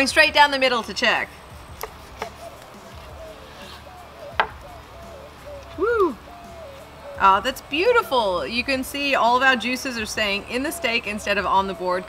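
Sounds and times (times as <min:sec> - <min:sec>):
knife knocking on wooden board: 0:04.4 - 0:04.6.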